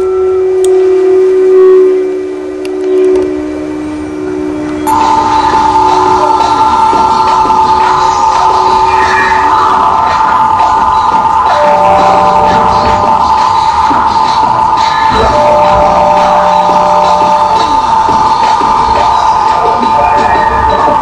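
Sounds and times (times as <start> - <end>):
horn-like tone: 0.0 - 21.0
low electronic drone: 0.0 - 21.0.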